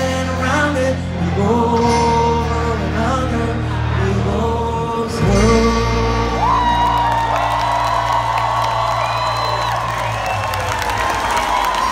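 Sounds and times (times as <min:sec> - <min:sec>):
crowd whooping and cheering: 0:06.0 - 0:11.9.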